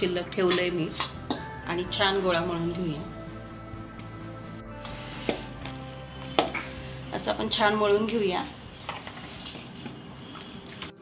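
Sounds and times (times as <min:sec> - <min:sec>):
kneading dough in metal bowl: 0:07.2 - 0:11.0.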